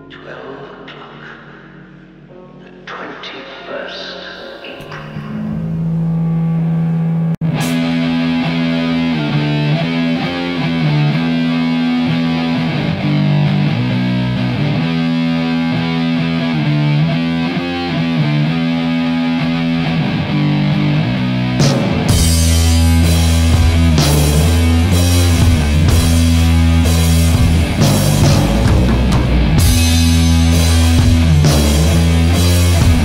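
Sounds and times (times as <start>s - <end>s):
fuzz-distorted electric guitar riff: 4.6s - 33.0s.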